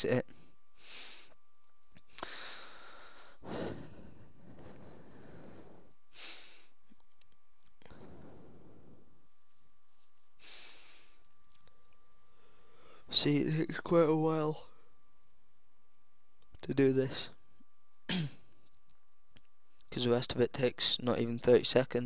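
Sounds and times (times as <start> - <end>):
faint steady tone: 0.0 - 22.0
person breathing close to microphone: 0.8 - 1.4, 2.1 - 6.8, 7.8 - 9.1, 10.0 - 11.3, 12.2 - 13.1.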